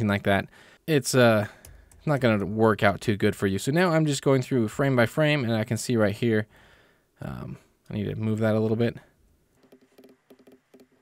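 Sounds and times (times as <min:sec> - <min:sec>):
computer mouse and keyboard clicking: 0:09.6 - 0:11.0.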